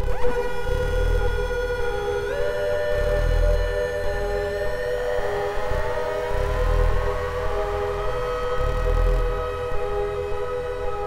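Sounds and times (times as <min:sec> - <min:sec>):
siren-like pitch glide: 0:00.0 - 0:11.0
synthesizer drone: 0:00.0 - 0:11.0.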